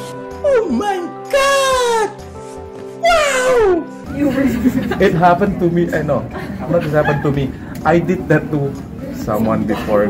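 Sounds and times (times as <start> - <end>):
background music: 0.0 - 10.0
man's high falling exclamation: 0.4 - 2.2, 3.0 - 3.8.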